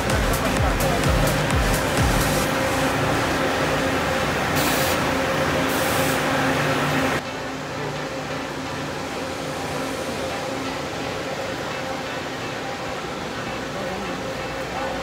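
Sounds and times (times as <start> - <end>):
bus engine humming: 0.0 - 15.0
air hisses: 4.5 - 5.1.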